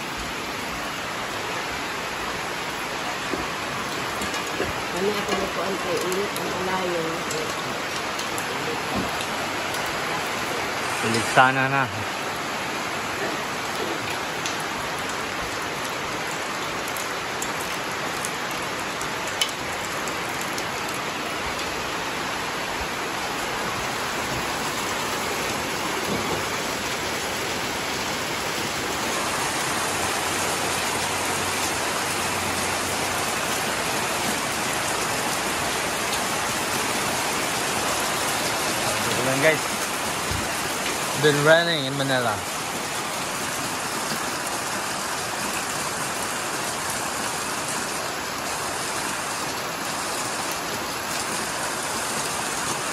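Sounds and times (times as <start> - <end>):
rain on a metal roof: 0.0 - 52.9.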